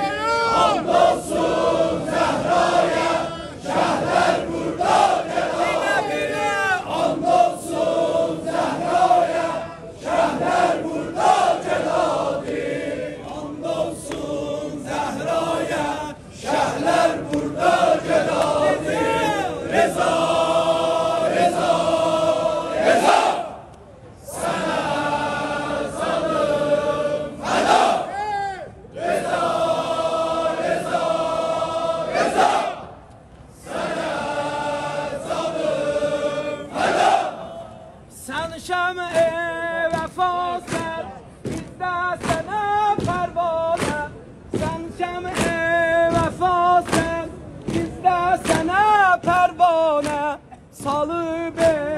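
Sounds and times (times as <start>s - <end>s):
crowd of men chanting: 0.0s - 28.3s, 29.0s - 33.0s, 33.6s - 51.9s.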